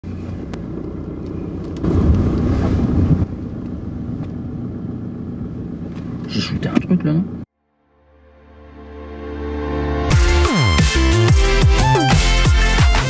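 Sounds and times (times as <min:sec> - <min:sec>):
car engine hum: 0:00.0 - 0:07.5
road rumble: 0:00.0 - 0:07.5.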